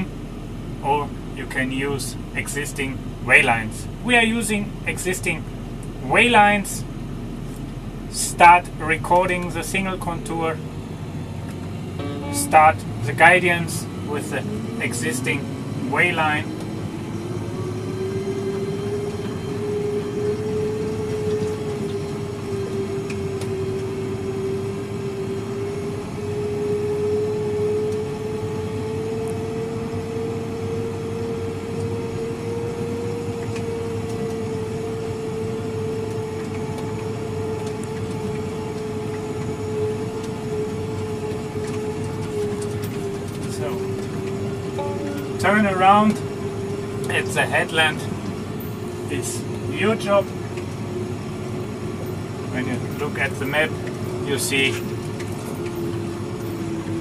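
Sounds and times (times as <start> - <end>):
tractor engine rumbling: 0.0 - 24.0, 32.9 - 57.0
tractor whine: 0.0 - 57.0.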